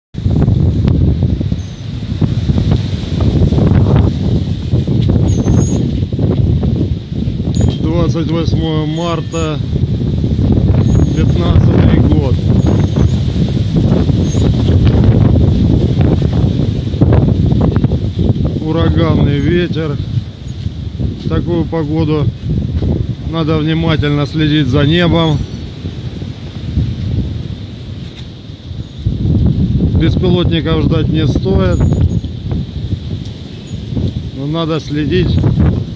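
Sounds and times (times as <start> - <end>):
wind buffeting microphone: 0.1 - 35.9.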